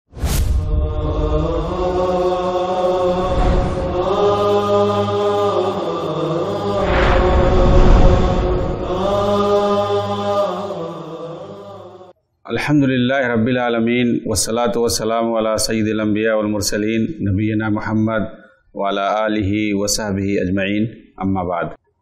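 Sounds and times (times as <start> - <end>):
sharp whoosh hit: 0.1 - 0.8, 6.6 - 9.6
swelling whoosh: 0.1 - 11.0
chanted vocal music: 0.4 - 21.7.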